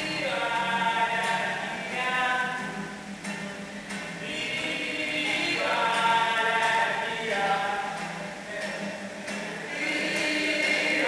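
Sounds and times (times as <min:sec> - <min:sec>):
group of voices singing: 0:00.0 - 0:02.9, 0:04.2 - 0:11.0.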